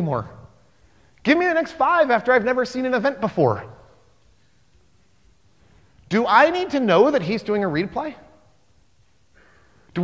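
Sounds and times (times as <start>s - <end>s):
man speaking: 0.0s - 0.6s, 1.2s - 4.0s, 6.1s - 8.5s.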